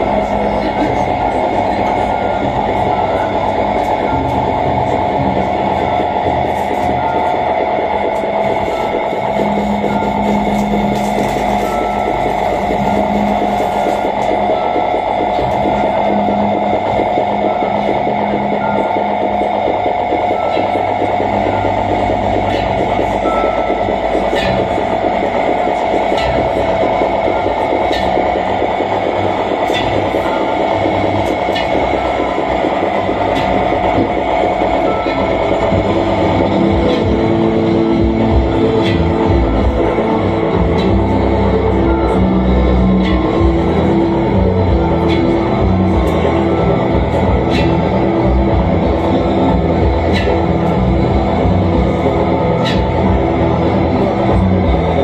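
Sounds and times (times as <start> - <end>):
electronic drone of held tones: 0.0 - 55.0
low hum: 0.0 - 55.0.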